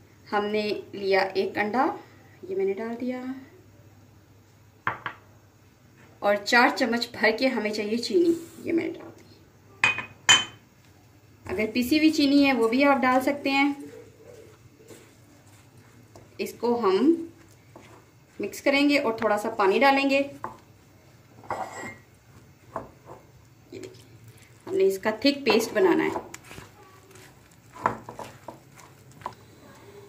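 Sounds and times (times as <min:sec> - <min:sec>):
spatula stirring thick batter: 0:12.7 - 0:19.5, 0:23.9 - 0:30.0
spatula scraping glass bowl: 0:21.4 - 0:22.0.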